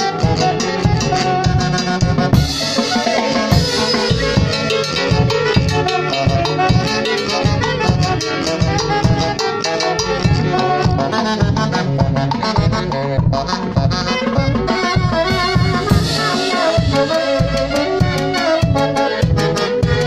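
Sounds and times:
bass drum beat: 0.0s - 20.0s
saxophones playing melody: 0.0s - 20.0s.

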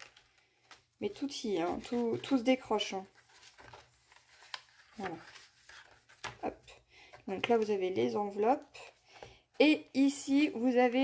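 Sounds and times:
paper pages rustling: 0.0s - 11.0s.

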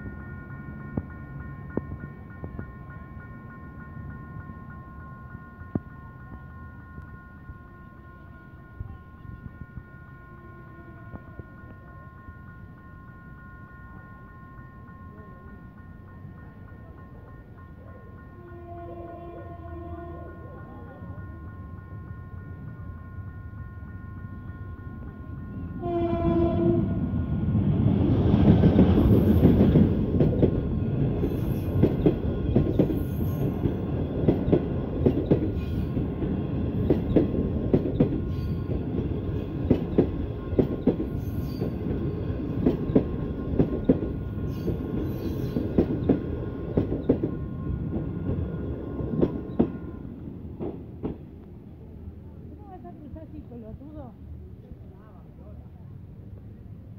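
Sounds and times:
locomotive horn: 18.4s - 20.4s, 25.8s - 27.1s
train wheels clattering: 28.4s - 49.9s.

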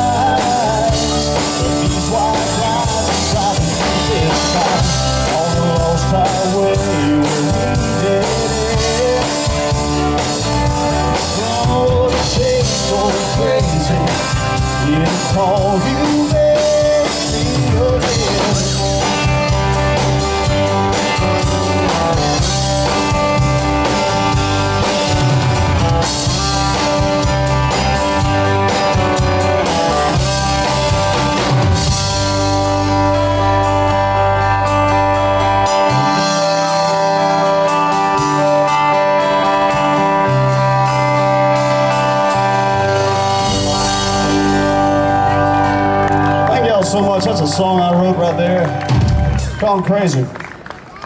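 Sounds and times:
rock band playing: 0.0s - 51.0s
man speaking: 46.5s - 48.8s, 49.6s - 50.3s.

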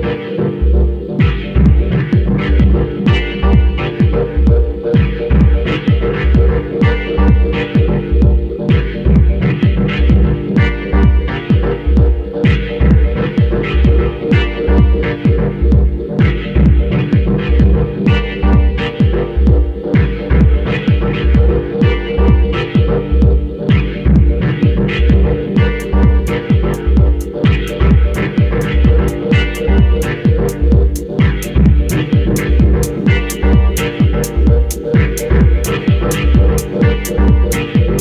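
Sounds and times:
deep sustained bass: 0.0s - 38.0s
dub techno track: 0.0s - 38.0s
synth drone: 0.0s - 38.0s
kick drum: 1.2s - 38.0s
hi-hat ticks: 23.7s - 38.0s.

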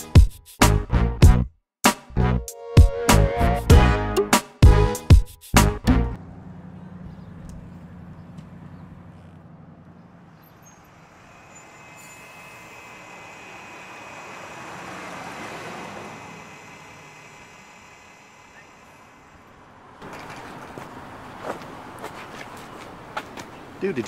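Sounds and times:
bus engine and road noise: 5.5s - 24.0s
high whine: 11.0s - 19.7s.

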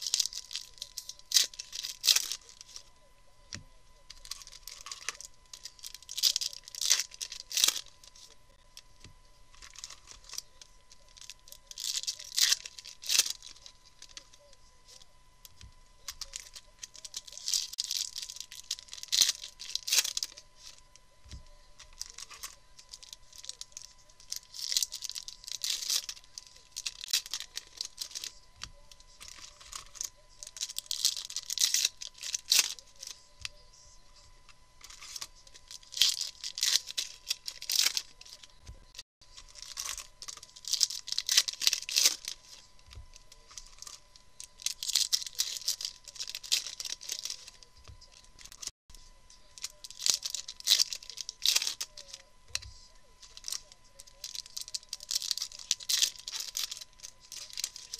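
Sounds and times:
foil packs tearing and crinkling: 0.0s - 2.9s, 4.1s - 8.4s, 9.6s - 14.4s, 16.0s - 20.8s, 21.9s - 28.4s, 29.2s - 33.4s, 34.8s - 38.6s, 39.4s - 42.6s, 43.2s - 48.7s, 49.6s - 52.2s, 53.2s - 57.9s.

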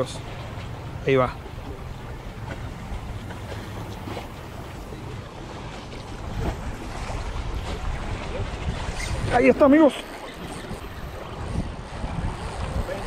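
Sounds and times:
open water washing: 0.0s - 13.0s
wind buffeting microphone: 0.0s - 13.0s.

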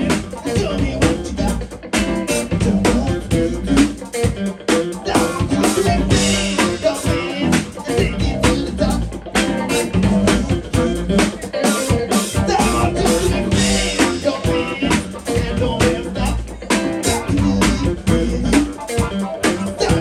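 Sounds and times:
drum kit beat: 0.0s - 20.0s
electric bass guitar: 0.0s - 20.0s.

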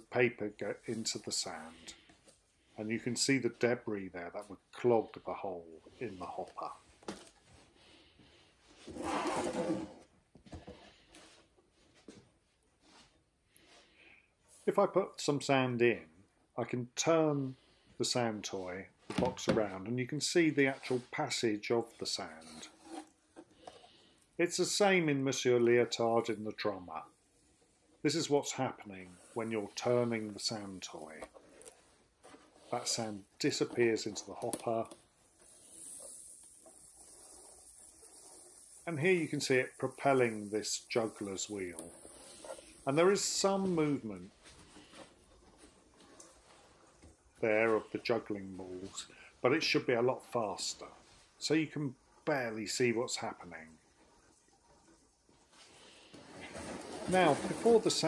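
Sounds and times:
sand pouring: 23.9s - 31.6s, 32.5s - 44.9s, 55.6s - 58.0s.

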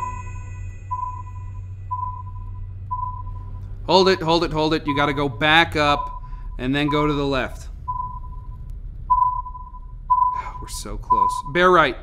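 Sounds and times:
high electronic beeps: 0.0s - 11.8s
low steady hum: 0.0s - 12.0s.

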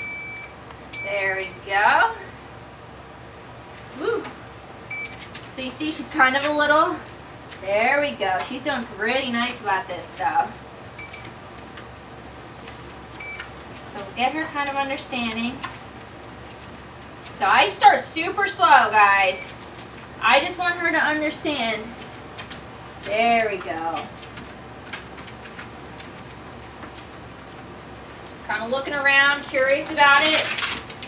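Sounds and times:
short electronic beep: 0.0s - 1.6s
treadmill motor humming: 0.0s - 29.9s.

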